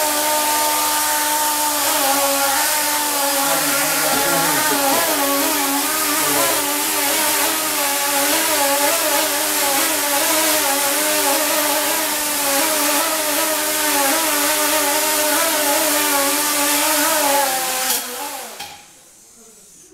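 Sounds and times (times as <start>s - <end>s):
small propellers buzzing whine: 0.9s - 16.3s.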